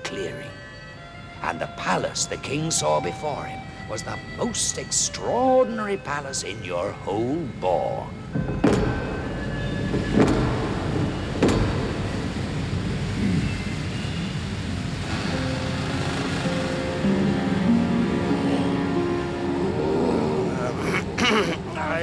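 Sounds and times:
soft music with held notes: 0.0s - 22.0s
waterfall rushing: 10.2s - 22.0s.

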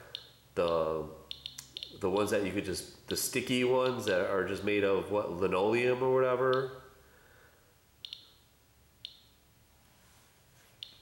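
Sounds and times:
geiger counter clicking: 0.1s - 2.0s, 8.0s - 9.4s.

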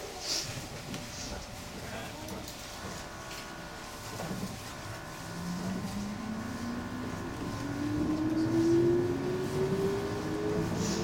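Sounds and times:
train motors whining: 2.4s - 11.0s.

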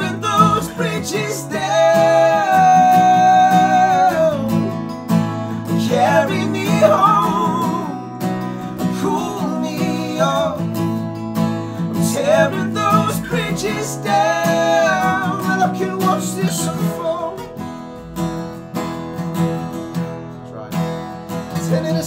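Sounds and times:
men singing: 0.0s - 10.9s, 11.7s - 17.6s, 21.5s - 22.0s
acoustic guitars strummed: 0.0s - 22.0s.

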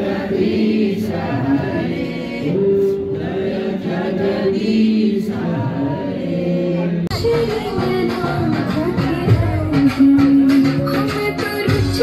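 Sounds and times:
group singing slow chant: 0.0s - 7.1s.

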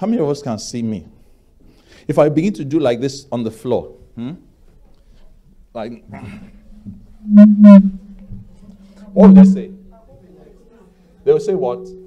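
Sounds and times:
steady low hum: 5.6s - 10.0s.

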